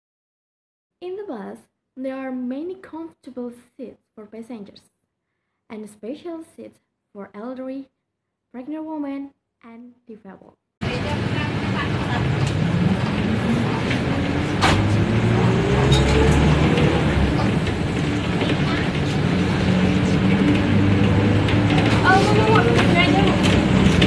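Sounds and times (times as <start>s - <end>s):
voices: 9.8s - 24.0s
bus engine running: 10.8s - 24.0s
rising engine whine: 10.8s - 24.0s.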